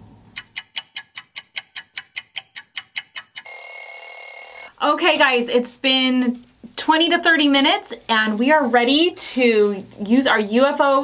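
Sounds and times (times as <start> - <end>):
clock ticking quickly: 0.4 - 3.8
alarm clock bell ringing: 3.4 - 4.7.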